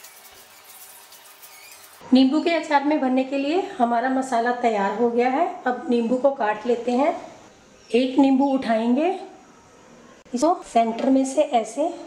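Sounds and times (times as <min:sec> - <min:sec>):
spatula scraping dry mix in bowl: 0:00.0 - 0:02.0.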